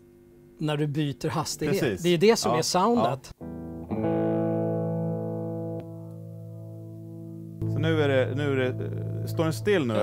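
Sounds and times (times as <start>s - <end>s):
electric guitar chord ringing: 3.0s - 10.0s.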